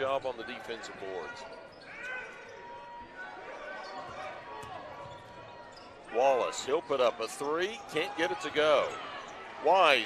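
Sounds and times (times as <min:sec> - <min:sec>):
players and crowd shouting: 0:00.1 - 0:10.0.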